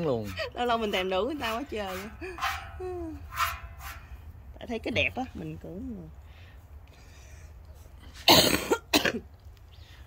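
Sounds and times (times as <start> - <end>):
person coughing: 8.2 - 9.3.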